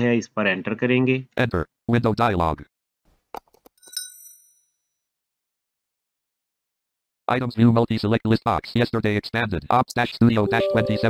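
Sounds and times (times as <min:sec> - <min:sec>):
computer chime: 0:10.4 - 0:11.0.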